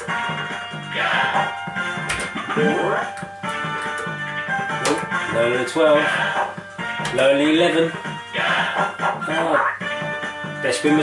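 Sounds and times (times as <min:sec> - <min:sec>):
fruit machine tune: 0:06.2 - 0:10.6.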